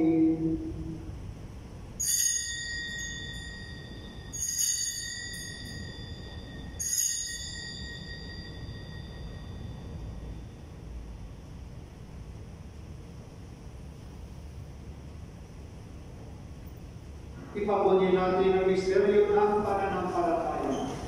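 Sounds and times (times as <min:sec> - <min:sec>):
small bell ringing: 0:02.0 - 0:10.7.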